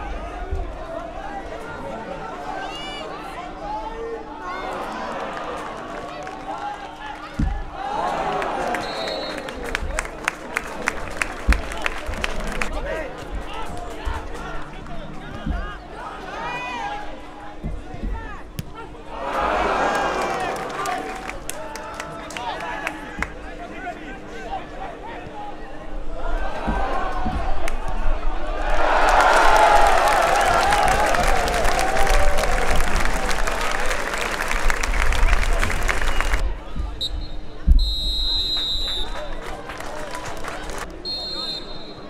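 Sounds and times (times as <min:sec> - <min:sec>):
football crowd cheering: 0:04.4 - 0:23.8, 0:26.1 - 0:42.0
thump: 0:07.4 - 0:07.7, 0:17.6 - 0:18.8, 0:26.6 - 0:27.6
referee's whistle blasts: 0:08.7 - 0:09.5, 0:36.2 - 0:39.3, 0:41.0 - 0:42.0.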